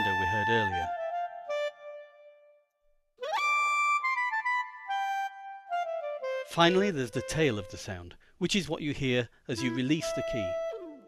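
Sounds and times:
keyboard clarinet notes: 0:00.0 - 0:02.6, 0:03.2 - 0:08.0, 0:09.5 - 0:11.0.

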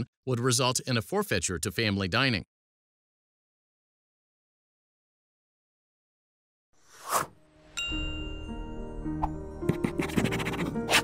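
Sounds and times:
bright bell-like ding: 0:07.7 - 0:09.4.

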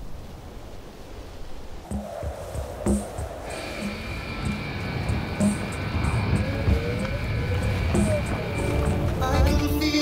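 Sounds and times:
high droning tones: 0:01.9 - 0:10.0
low rumbling swell: 0:02.0 - 0:10.0
tone gliding upward: 0:03.6 - 0:09.9.

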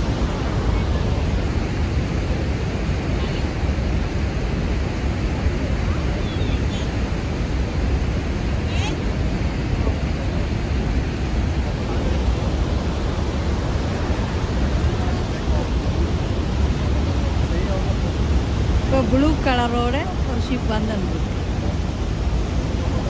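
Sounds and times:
waterfall roar: 0:00.0 - 0:23.0.

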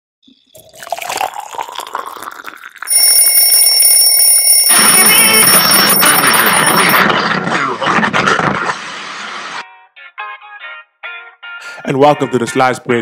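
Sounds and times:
alarm clock ringing: 0:02.9 - 0:07.0.

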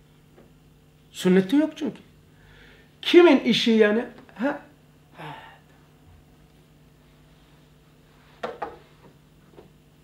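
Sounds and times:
light knocks on wood: 0:08.4 - 0:08.8.

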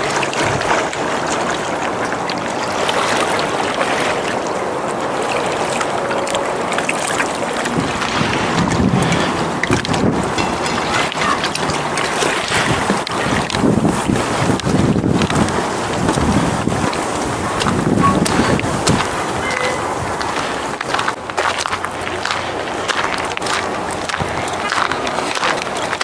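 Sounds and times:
small waves washing on shore: 0:00.0 - 0:26.0
wind on microphone: 0:00.0 - 0:26.0.

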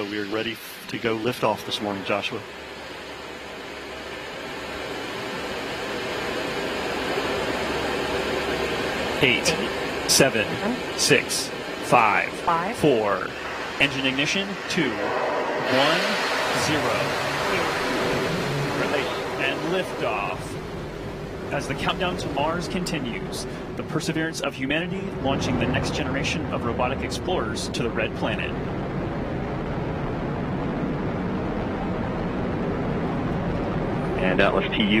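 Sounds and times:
voices: 0:00.0 - 0:02.4, 0:09.2 - 0:20.6, 0:21.5 - 0:28.6, 0:34.1 - 0:35.0
rocket engine rushing roar: 0:00.0 - 0:35.0.

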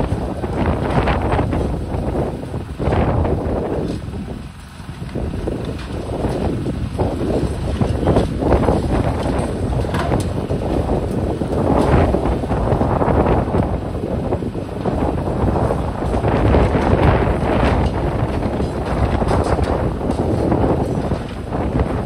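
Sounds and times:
excavator engine under load: 0:00.0 - 0:22.0
wind buffeting microphone: 0:00.0 - 0:22.0.

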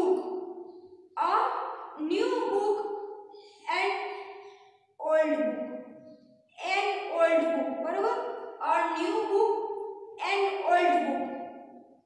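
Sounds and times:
woman reciting in sing-song voice: 0:01.2 - 0:02.8, 0:03.5 - 0:04.2, 0:05.0 - 0:05.6, 0:06.6 - 0:09.6, 0:10.2 - 0:11.3.

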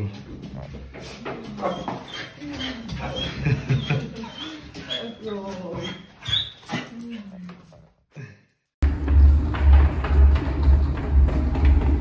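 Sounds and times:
dog high squeal: 0:01.6 - 0:06.8
dog whimpering: 0:01.6 - 0:06.9.

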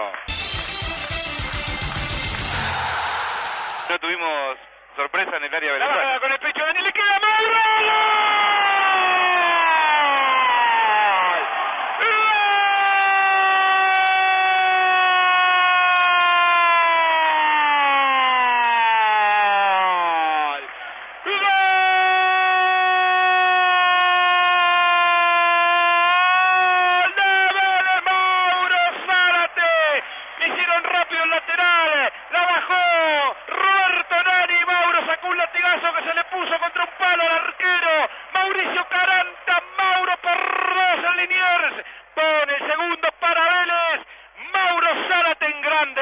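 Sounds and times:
commentator shouting goal cry: 0:05.7 - 0:46.0.

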